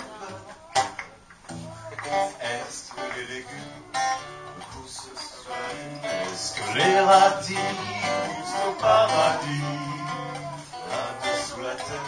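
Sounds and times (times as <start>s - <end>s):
acoustic guitar: 0.0s - 12.0s
person singing: 1.6s - 12.0s.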